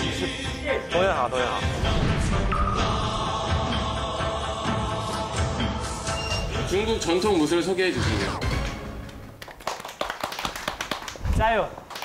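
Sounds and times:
group of people clapping: 0:08.6 - 0:12.0.

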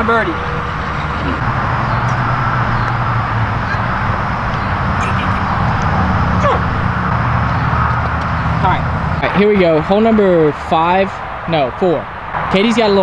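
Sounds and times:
highway traffic drone: 0:00.0 - 0:13.0.

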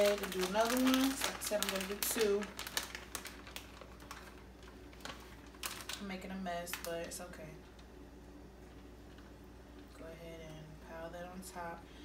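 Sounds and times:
plastic bag rustling: 0:00.0 - 0:07.4.

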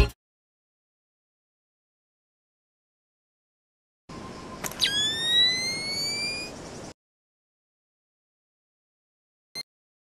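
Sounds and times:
camera short beep: 0:04.6 - 0:06.5
high whine rising in pitch: 0:04.7 - 0:06.6.

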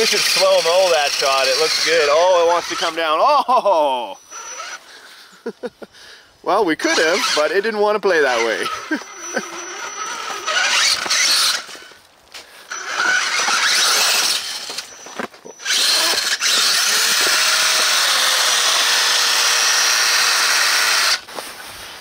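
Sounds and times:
rc car electric motor whining: 0:00.0 - 0:03.2, 0:04.1 - 0:04.8, 0:06.8 - 0:12.0, 0:12.7 - 0:21.2.

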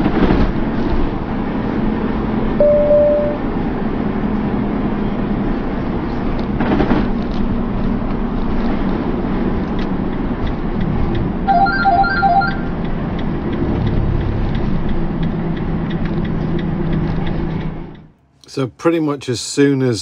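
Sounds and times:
van engine: 0:00.0 - 0:18.6
road noise: 0:00.0 - 0:20.0
short electronic chime: 0:02.6 - 0:03.5.

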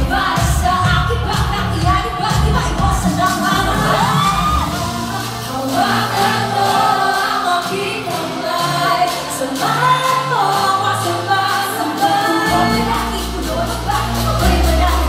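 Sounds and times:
pop backing track: 0:00.0 - 0:15.0
women singing into microphones: 0:00.0 - 0:15.0.

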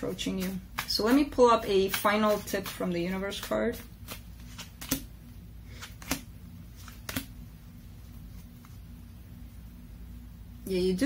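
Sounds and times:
cards being shuffled: 0:00.0 - 0:09.0.

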